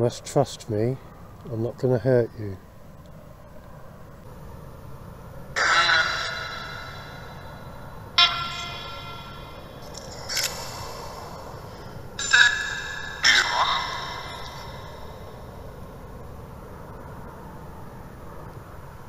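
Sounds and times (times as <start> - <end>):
garbled echoing bursts: 5.6 - 15.8
steady hiss: 9.6 - 19.0.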